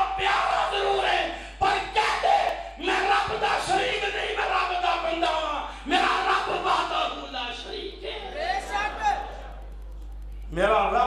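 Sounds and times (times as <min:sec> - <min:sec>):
man shouting into microphones: 0:00.0 - 0:09.2.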